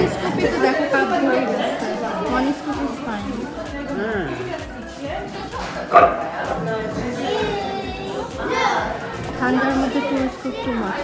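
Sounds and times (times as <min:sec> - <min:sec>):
indistinct voices and chatter: 0:00.0 - 0:11.0.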